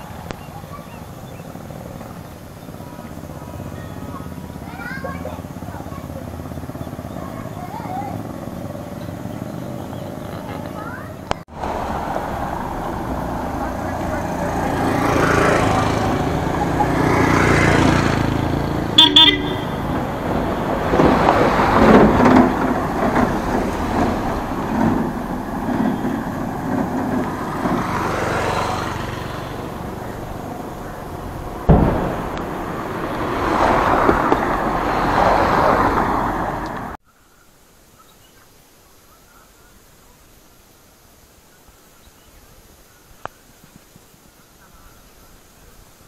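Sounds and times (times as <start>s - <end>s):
car road and engine noise: 0.0s - 37.0s
vehicle horn toot: 19.0s - 20.1s
sharp knock: 31.7s - 32.5s.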